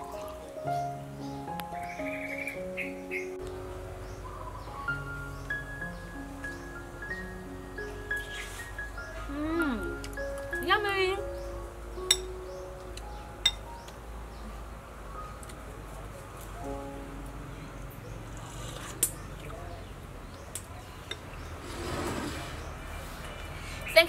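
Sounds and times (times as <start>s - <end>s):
soft background music: 0.0s - 20.2s
metal spoon clinking ceramic bowl: 12.1s - 12.3s, 13.4s - 13.6s.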